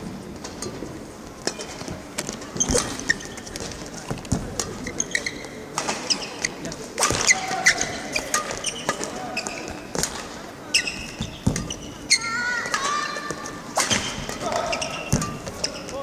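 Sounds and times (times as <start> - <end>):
shoes squeaking on mat: 1.8 - 16.0
shuttlecock strikes: 13.8 - 15.8.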